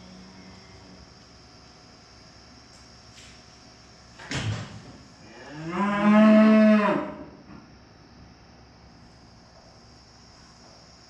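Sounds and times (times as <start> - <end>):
cow mooing: 5.3 - 7.2.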